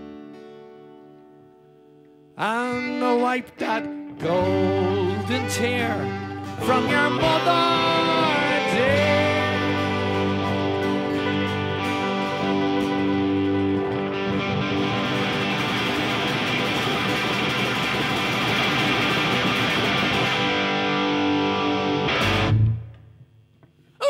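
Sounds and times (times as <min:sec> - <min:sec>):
strummed guitars: 0:00.0 - 0:23.9
live band playing: 0:03.6 - 0:22.7.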